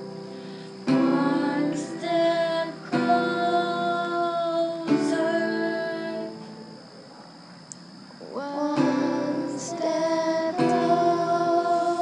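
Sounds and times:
acoustic guitar: 0:00.0 - 0:07.0, 0:08.7 - 0:12.0
woman singing: 0:00.9 - 0:06.5, 0:08.2 - 0:12.0.

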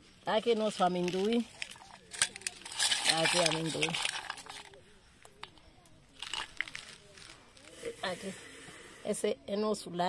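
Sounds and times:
peanut pods rustling in hand: 0:00.0 - 0:09.0
faint background voices: 0:00.0 - 0:10.0.

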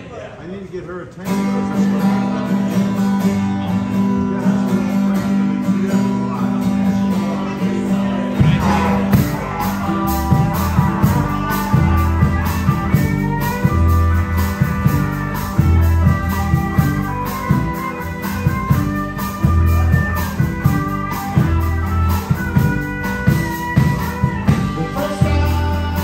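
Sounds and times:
drums: 0:01.0 - 0:26.0
lead guitar with sliding notes: 0:01.2 - 0:26.0
bass guitar: 0:01.3 - 0:26.0.

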